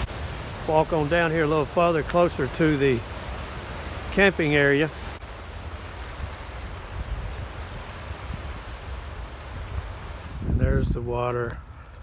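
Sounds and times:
river water rushing: 0.0 - 10.5
wind rumbling on microphone: 0.0 - 12.0.

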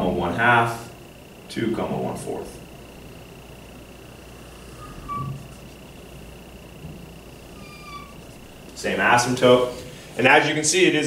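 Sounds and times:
faint high-pitched whine: 0.0 - 11.0
marker squeaking on whiteboard: 4.7 - 5.8, 7.4 - 8.4.

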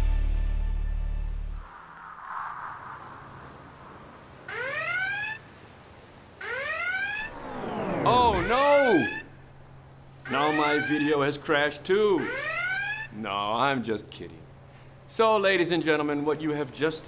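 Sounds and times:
siren-like whooping and wails: 1.6 - 5.5, 6.4 - 11.4, 12.0 - 13.2.

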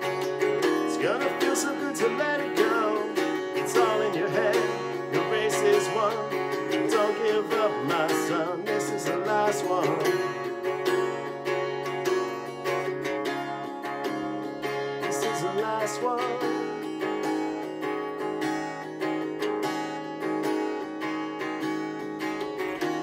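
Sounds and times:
man singing: 0.0 - 10.7, 15.0 - 17.3
acoustic guitar strumming: 0.0 - 23.0.

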